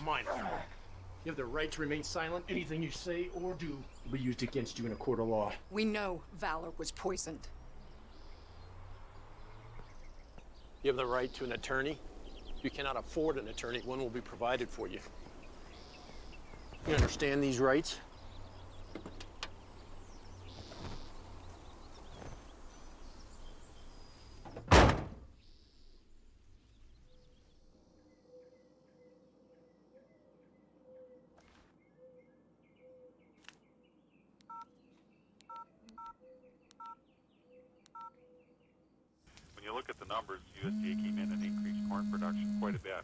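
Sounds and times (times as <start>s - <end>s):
car door slamming: 24.4s - 25.2s
touch-tone telephone key beeps: 34.5s - 34.7s, 37.9s - 38.1s
faint steady hum: 39.3s - 43.0s.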